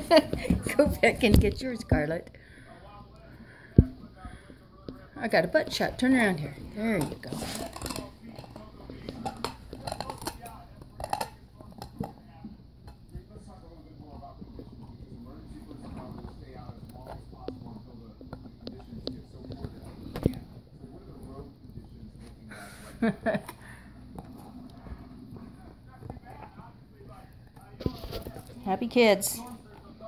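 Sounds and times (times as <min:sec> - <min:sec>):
puppies gnawing on bones: 0:03.1 - 0:22.5, 0:23.4 - 0:28.6.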